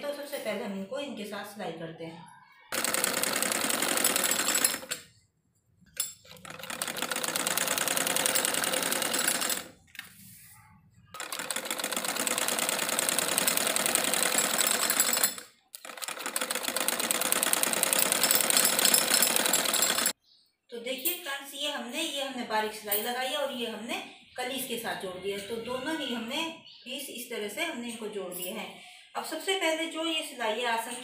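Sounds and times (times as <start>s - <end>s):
sewing machine stitching: 2.7s - 5.1s, 6.0s - 9.8s, 11.1s - 20.2s.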